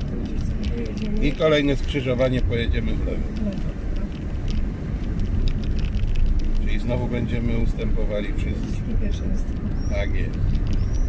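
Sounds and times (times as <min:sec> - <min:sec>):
person speaking: 0:00.0 - 0:04.2, 0:06.6 - 0:10.5
car engine and tyres rumbling: 0:00.0 - 0:11.0.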